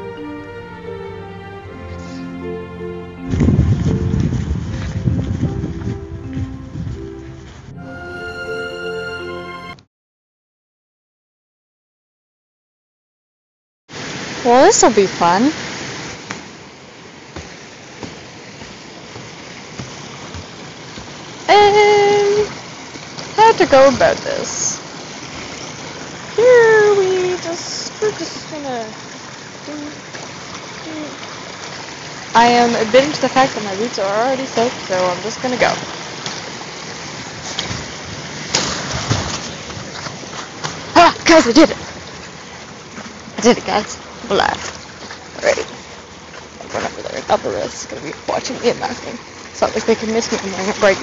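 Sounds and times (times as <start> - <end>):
running water rushing: 0.0 - 9.7, 13.9 - 51.0
background music with held notes: 0.0 - 9.9
wind rumble on microphone: 3.2 - 7.8.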